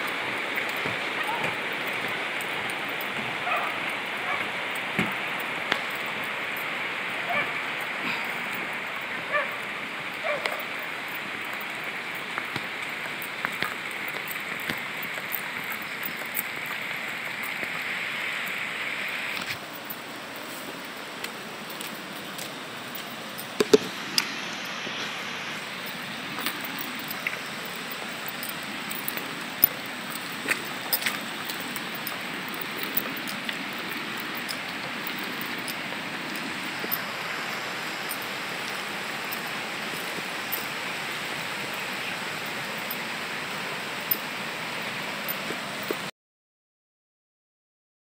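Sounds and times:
river water rushing: 0.0 - 46.1.

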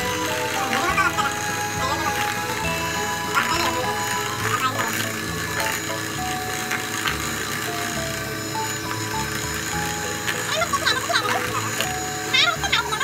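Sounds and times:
background music: 0.0 - 13.0
electric hand mixer whirring: 0.0 - 13.0.

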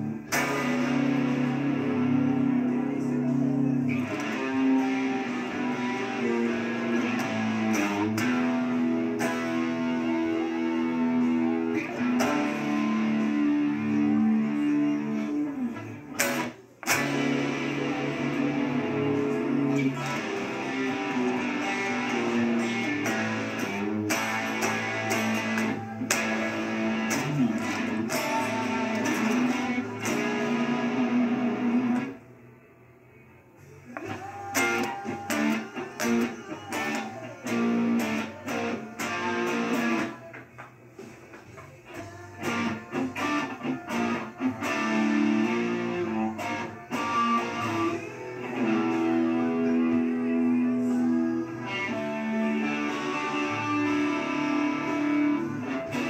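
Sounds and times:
rock music with drums: 0.0 - 2.7, 4.0 - 15.6, 16.2 - 32.2, 34.0 - 50.8, 51.5 - 56.0
electric guitar: 0.0 - 56.0.

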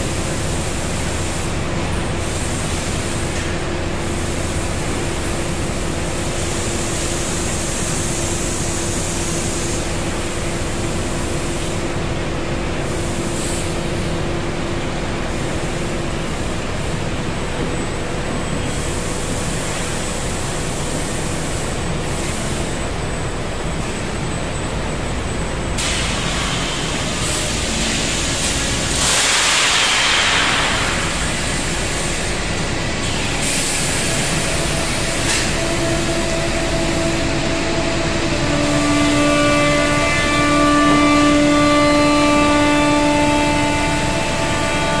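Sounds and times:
hiss: 0.0 - 12.0, 12.8 - 14.1, 18.5 - 23.0, 25.8 - 40.5
foundry machinery noise: 0.0 - 45.0
steady pitched whine: 22.6 - 45.0.

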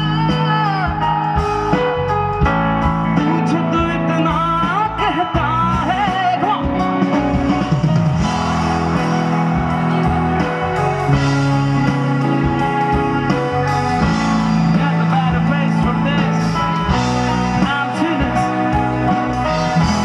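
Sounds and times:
man singing: 0.0 - 1.4, 3.0 - 7.0, 14.5 - 20.0
rock band playing: 0.0 - 20.0.

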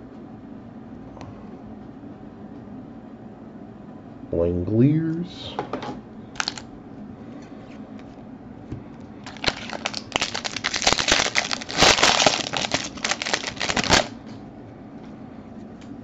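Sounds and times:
foil wrapper tearing and crinkling: 6.4 - 6.6, 9.2 - 14.2.

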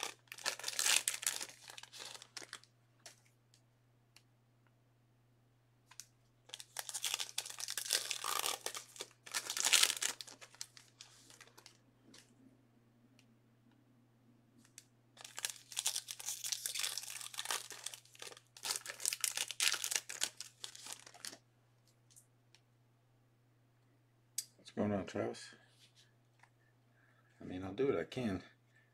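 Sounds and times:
packaging torn and crumpled: 0.0 - 2.7, 5.9 - 11.8, 15.2 - 21.4.

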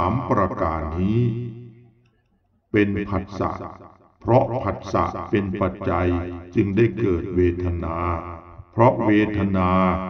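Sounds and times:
man chanting scripture: 0.0 - 1.9, 2.7 - 10.0.

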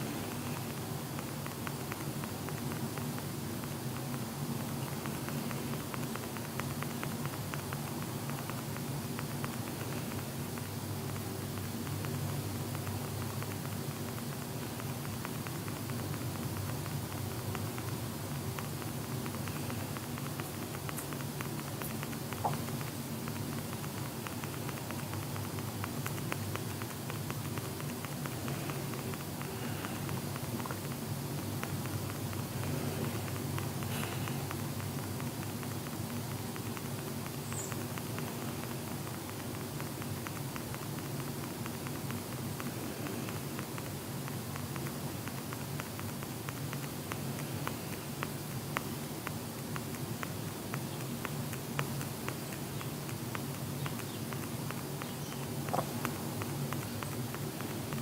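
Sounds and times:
crackling static and hiss: 0.0 - 58.0.

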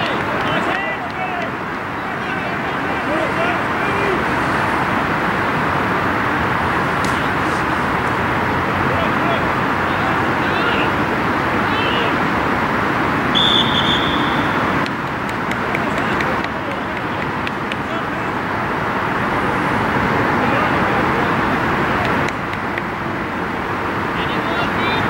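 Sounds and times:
players shouting: 0.0 - 22.7, 24.0 - 25.0
outdoor background noise: 0.0 - 25.0
referee's whistle blast: 13.3 - 14.6.

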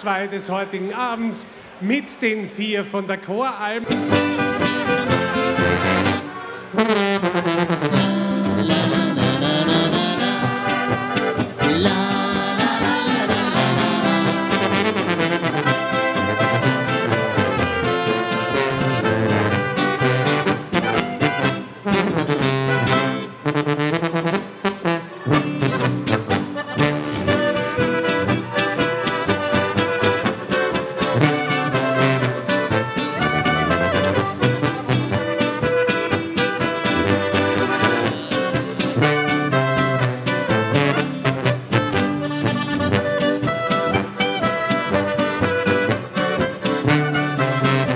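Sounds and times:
brass band dance tune: 0.1 - 47.9
button accordion: 3.8 - 47.9
trumpets: 3.8 - 47.9
tuba: 3.8 - 47.9.

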